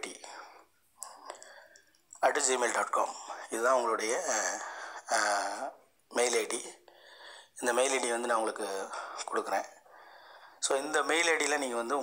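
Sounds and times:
person speaking breathily: 2.9s - 5.8s, 8.8s - 10.8s.

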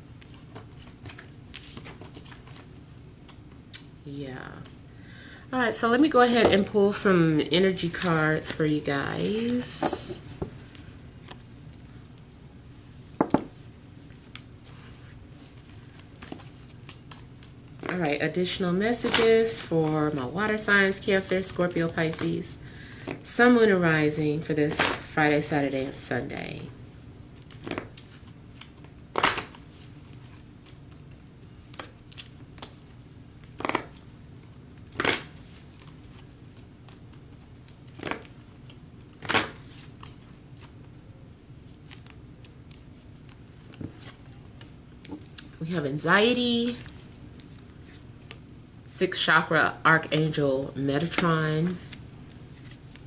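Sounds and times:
low room hum: 0.0s - 53.0s
cards being shuffled: 0.2s - 3.4s, 13.2s - 18.0s, 27.4s - 40.9s, 41.7s - 45.5s, 51.1s - 53.0s
woman speaking: 4.1s - 4.8s, 5.5s - 10.3s, 17.9s - 22.6s, 23.2s - 26.8s, 45.5s - 46.9s, 48.9s - 51.9s.

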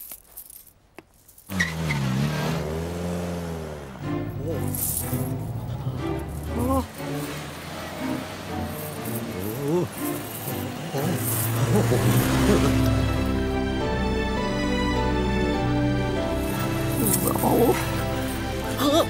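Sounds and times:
cartoon car engine revving: 1.5s - 9.9s, 10.6s - 13.1s
music: 3.6s - 19.0s.

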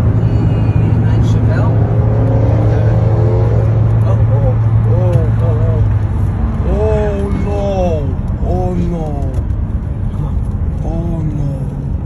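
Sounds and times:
car cabin road and engine drone: 0.0s - 12.0s
voices talking: 4.0s - 6.0s, 6.6s - 9.4s.

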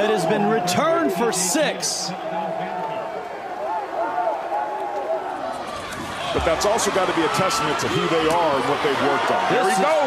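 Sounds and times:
man talking: 0.0s - 3.1s
stadium noise: 0.0s - 10.0s.

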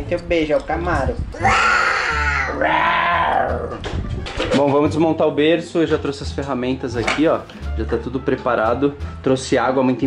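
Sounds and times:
toddler squealing: 1.4s - 3.3s.

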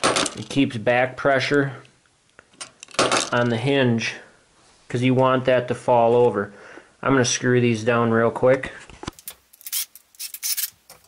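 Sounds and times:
cordless drill: 9.6s - 10.8s.

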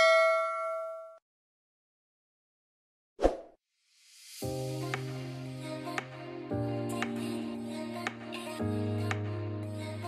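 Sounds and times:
background music: 4.4s - 10.0s.

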